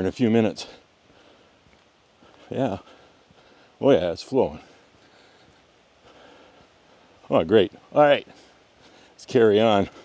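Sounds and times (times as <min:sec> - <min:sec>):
distant creek rushing: 0:00.0 - 0:10.0.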